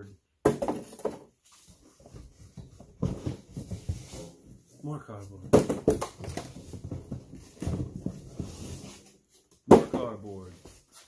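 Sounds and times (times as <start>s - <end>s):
cardboard rustling and scraping: 1.4s - 11.0s.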